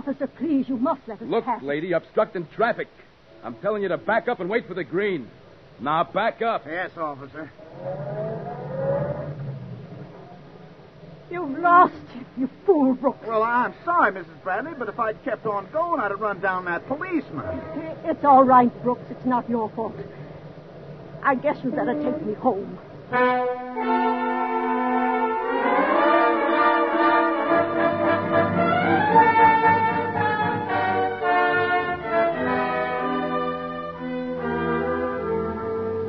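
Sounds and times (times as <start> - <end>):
car engine reversing: 7.6 - 10.4
orchestral brass chords: 23.1 - 36.0.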